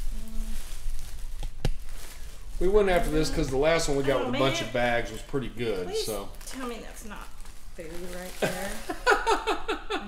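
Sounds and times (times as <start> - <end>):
plastic garbage bag rustling: 0.0 - 9.6.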